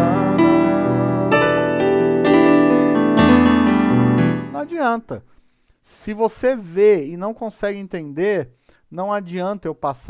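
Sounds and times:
man's voice: 0.0s - 2.0s, 4.5s - 10.0s
electronic keyboard chords: 0.0s - 4.8s.

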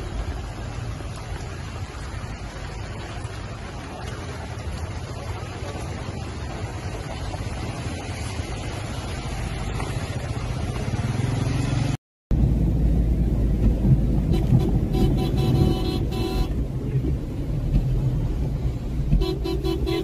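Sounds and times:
car engine and road noise: 0.0s - 20.0s
water and wind noise: 0.0s - 20.0s
car horn: 14.3s - 16.6s, 19.2s - 20.0s.

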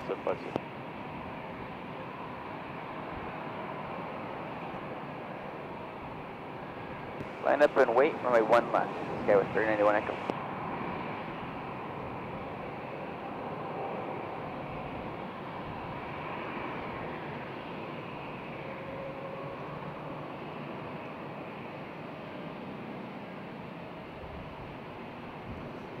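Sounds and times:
distant jet engines rumbling: 0.0s - 26.0s.

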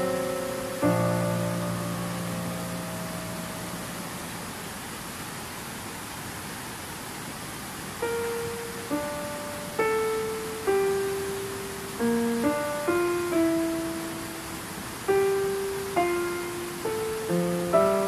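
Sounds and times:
slow piano notes: 0.0s - 5.0s, 8.0s - 18.0s
river water rushing: 0.0s - 18.0s.

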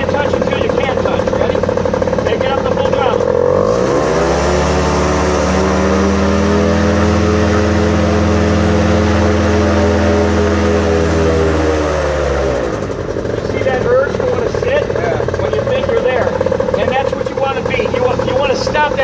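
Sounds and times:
paramotor engine revving: 0.0s - 19.0s.

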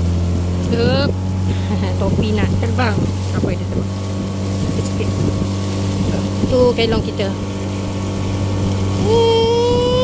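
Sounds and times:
boat engine droning: 0.0s - 10.0s
person exclaiming: 9.0s - 10.0s.

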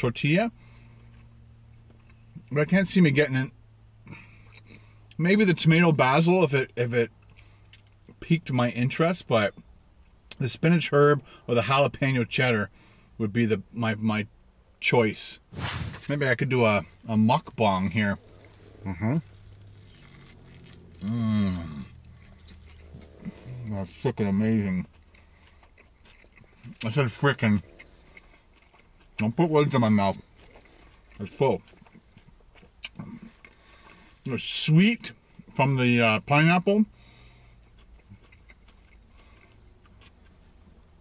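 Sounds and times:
low steady hum: 0.0s - 41.0s
biting and chewing: 16.7s - 34.2s, 37.1s - 41.0s
man saying mm-hmm: 18.8s - 19.3s, 21.0s - 22.0s.

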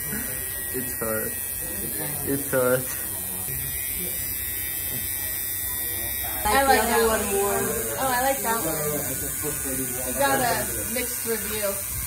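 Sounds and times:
tattoo machine buzzing: 0.0s - 12.0s.

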